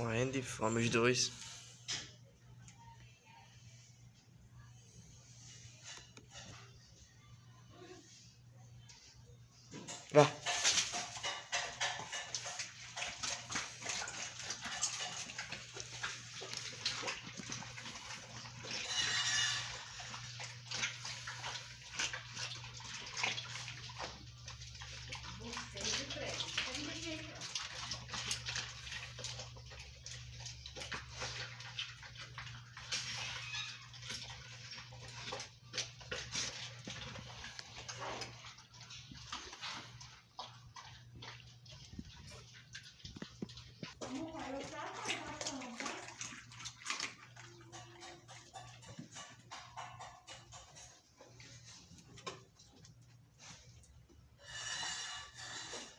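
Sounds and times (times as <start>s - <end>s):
dogs chewing and crunching bones: 8.9s - 55.9s.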